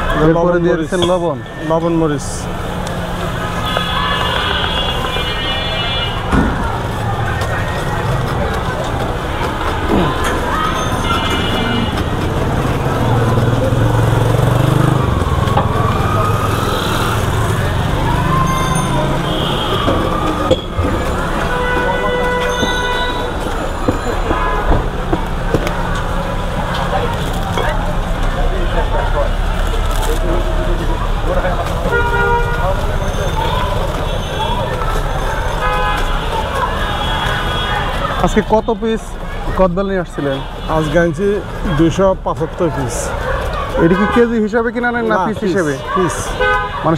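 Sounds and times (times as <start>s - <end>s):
vehicle engines rumbling: 0.0s - 46.9s
vehicle horn: 3.5s - 6.4s, 10.9s - 12.1s, 18.6s - 20.1s, 21.2s - 23.4s, 31.8s - 34.7s, 35.5s - 38.1s, 43.8s - 44.4s, 46.2s - 46.9s.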